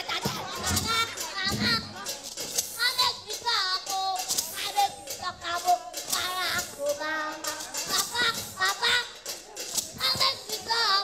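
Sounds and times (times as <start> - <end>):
children singing and calling out: 0.0 - 11.0
music: 0.0 - 11.0.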